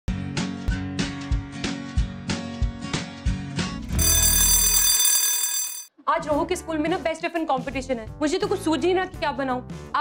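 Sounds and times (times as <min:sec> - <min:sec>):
bright ringing bell sound effect: 0:04.0 - 0:05.9.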